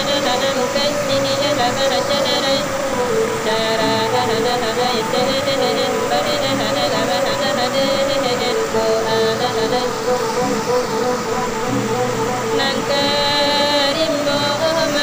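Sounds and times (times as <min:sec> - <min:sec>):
bamboo flute melody: 0:00.0 - 0:15.0.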